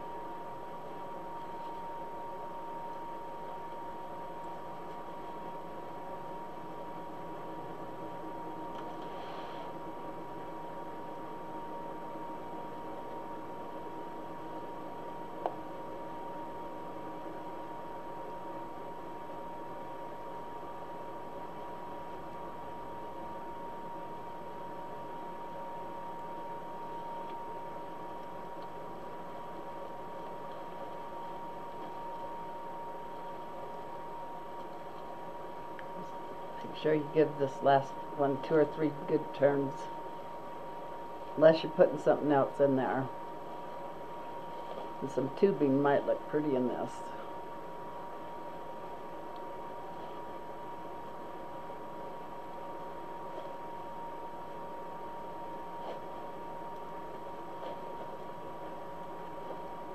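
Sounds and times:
constant high-pitched tone: 10.5s - 59.9s.

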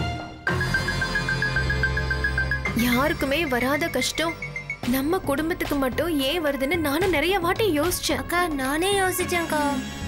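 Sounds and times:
dramatic background music: 0.0s - 10.0s.

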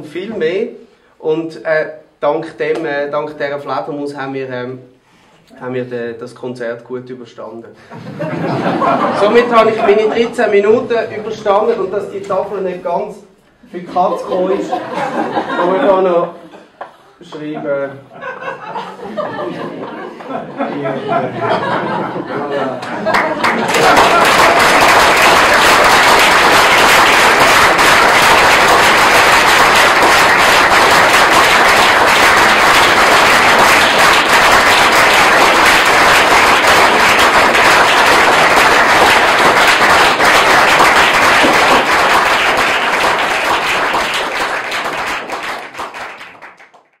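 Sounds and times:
audience applauding: 8.4s - 10.9s, 22.8s - 47.0s.

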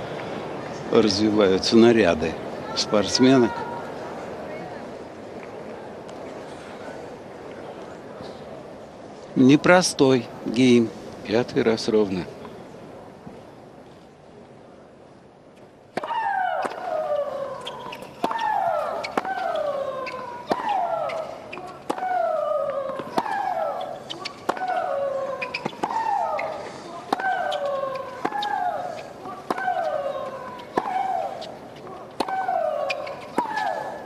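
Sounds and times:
player shrieking: 16.0s - 31.5s, 32.2s - 34.0s
racket striking tennis ball: 17.6s - 34.0s.

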